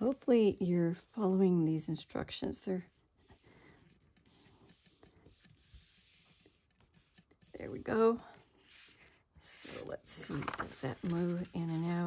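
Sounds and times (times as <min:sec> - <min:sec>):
paper rustling: 0:08.6 - 0:12.0.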